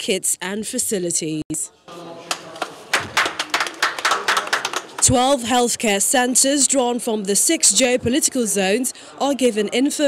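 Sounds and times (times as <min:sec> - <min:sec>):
people clapping: 0:01.9 - 0:05.7.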